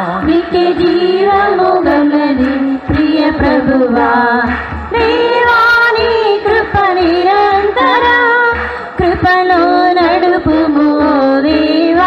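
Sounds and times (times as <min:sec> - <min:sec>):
steady low beat: 0:00.0 - 0:12.0
voices singing worship chorus: 0:00.0 - 0:12.0.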